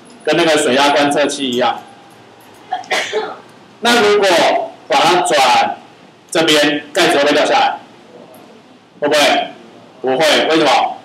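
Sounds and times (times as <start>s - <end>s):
man speaking: 0.3s - 1.9s, 3.8s - 8.4s, 9.0s - 11.0s
man coughing: 2.7s - 3.4s.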